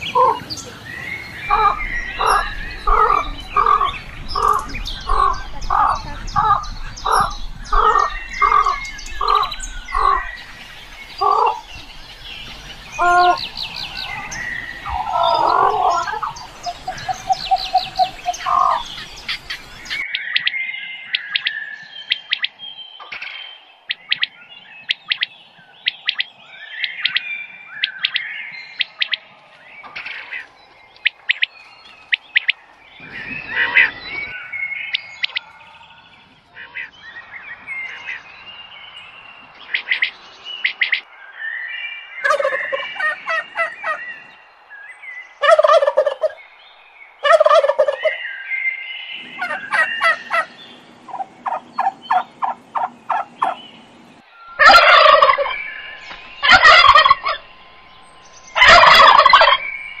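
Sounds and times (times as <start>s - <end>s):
turkeys gobbling: 0.0s - 0.8s, 1.5s - 20.5s, 42.2s - 44.0s, 45.4s - 46.4s, 47.2s - 48.2s, 49.2s - 53.6s, 54.5s - 59.8s.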